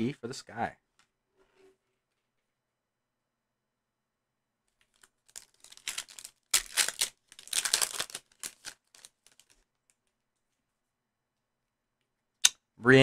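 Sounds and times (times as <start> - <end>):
foil wrapper ripping and crinkling: 4.8 - 9.6.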